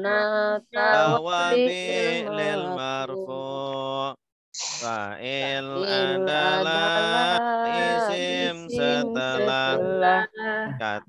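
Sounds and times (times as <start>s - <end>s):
person chanting melodically: 0.0s - 4.2s, 4.8s - 11.0s.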